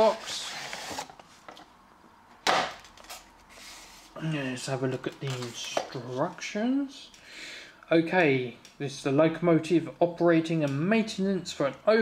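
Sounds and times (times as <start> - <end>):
packaging handling noise: 4.8 - 6.2.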